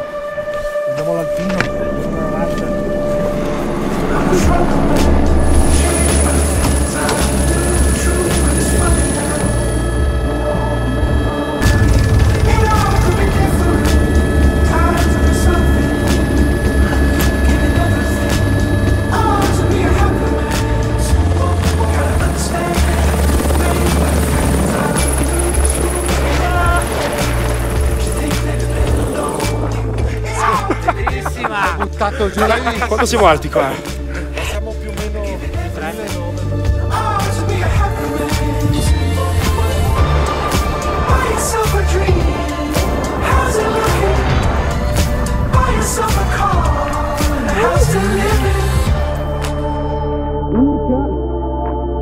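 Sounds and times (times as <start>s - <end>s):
helicopter rotor and engine: 1.4s - 34.3s
music with strong bass beat: 11.1s - 34.4s, 44.9s - 49.7s.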